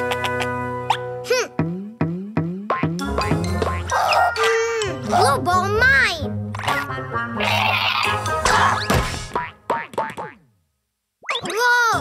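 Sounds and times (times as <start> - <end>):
cartoon ball bouncing boing: 1.6 - 4.0, 8.0 - 10.5.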